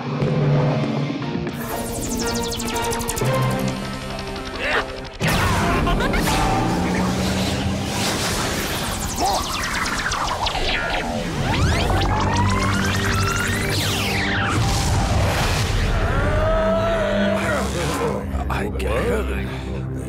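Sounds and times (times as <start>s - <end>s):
dramatic cartoon action music: 0.0s - 20.0s
sci-fi sweeping effects: 1.6s - 4.6s, 6.2s - 15.9s.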